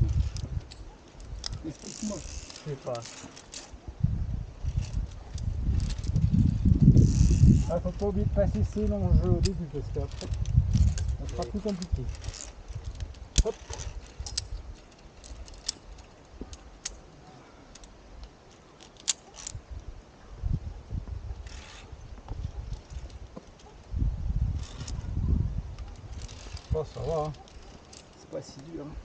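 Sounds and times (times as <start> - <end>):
carabiners clicking on steel cable: 0.0 - 3.8, 4.5 - 19.9, 21.3 - 25.1, 25.7 - 29.0.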